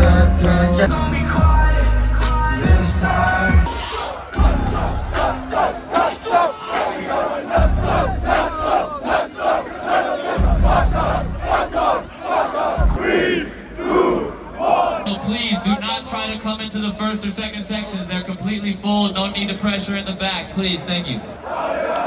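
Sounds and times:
crowd shouting rhythmically: 0.0 - 15.8, 21.2 - 22.0
deep bass booms: 4.4 - 5.3, 7.6 - 8.6, 10.4 - 11.5.

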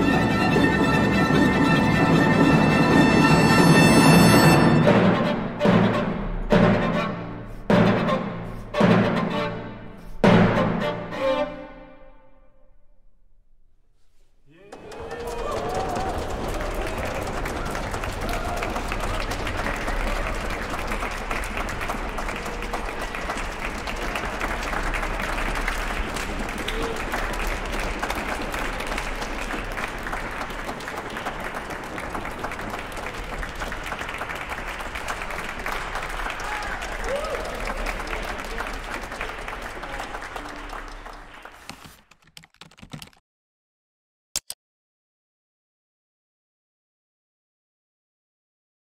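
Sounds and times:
audience applauding: 0.0 - 4.8, 14.5 - 43.2.

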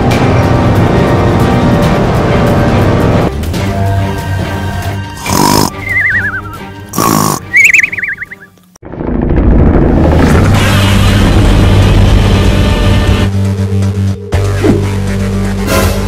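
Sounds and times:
background music: 0.0 - 8.7, 10.4 - 16.0
cartoon snoring with whistle: 5.2 - 8.4.

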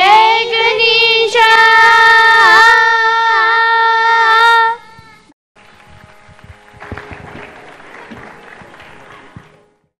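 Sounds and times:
audience applauding: 5.6 - 9.9.

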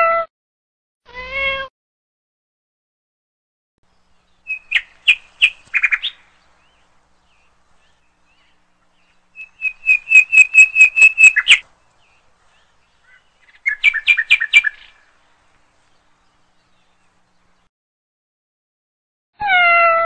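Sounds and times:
songbird chirping: 3.8 - 17.7.

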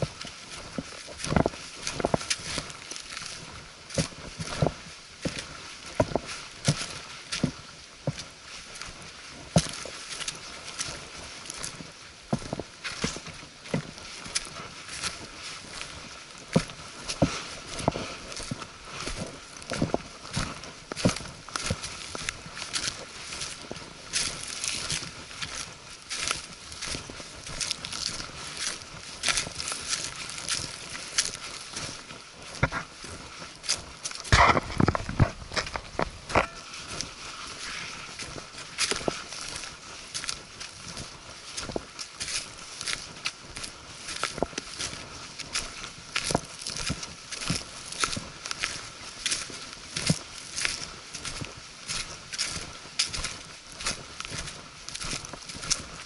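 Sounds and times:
footsteps crunching dry leaves: 0.0 - 56.0.

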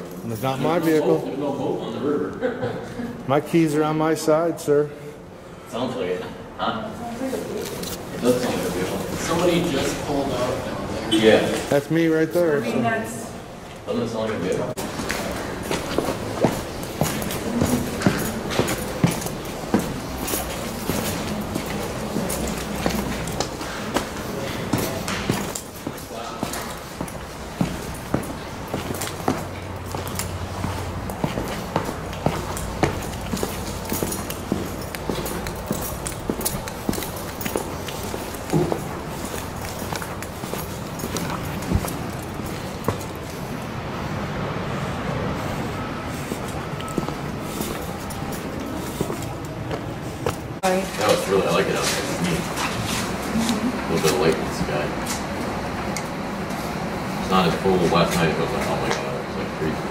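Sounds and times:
footsteps on concrete: 14.8 - 43.5, 45.4 - 50.6.

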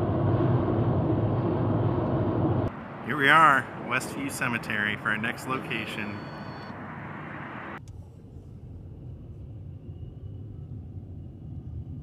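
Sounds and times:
steady rushing noise: 0.0 - 7.8.

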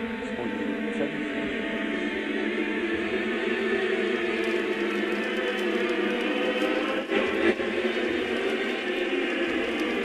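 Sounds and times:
choir holding sustained notes: 0.0 - 10.0.

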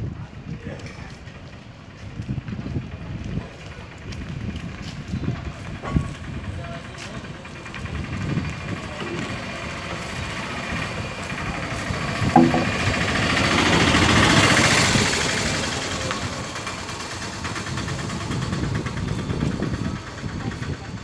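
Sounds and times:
auto-rickshaw engine: 0.0 - 21.0
indistinct voices: 8.0 - 13.4.

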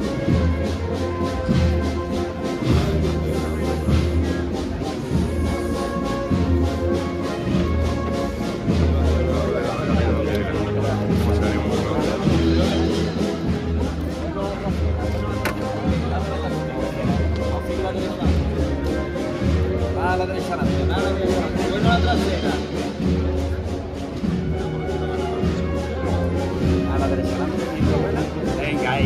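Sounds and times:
brass band playing a march: 0.0 - 29.0
low drum beat: 0.0 - 29.0.

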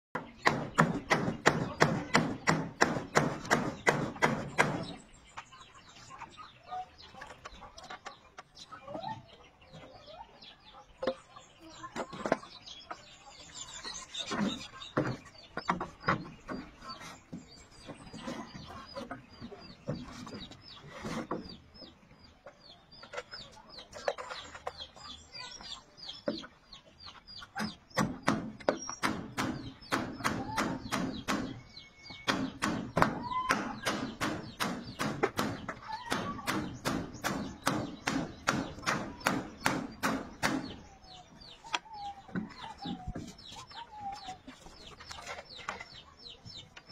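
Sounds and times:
chickens clucking: 0.1 - 46.9.

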